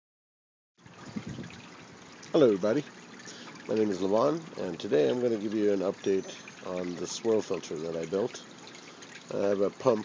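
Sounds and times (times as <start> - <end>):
water trickling and splashing: 0.8 - 10.0.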